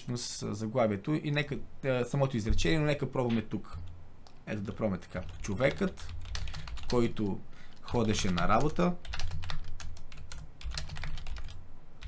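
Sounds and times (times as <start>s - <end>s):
computer keyboard typing: 5.2s - 11.6s.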